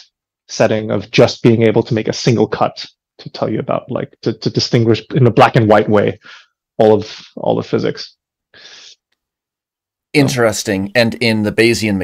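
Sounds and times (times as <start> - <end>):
short breath: 6.2 - 6.6, 8.5 - 9.0
man's voice: 10.2 - 12.0.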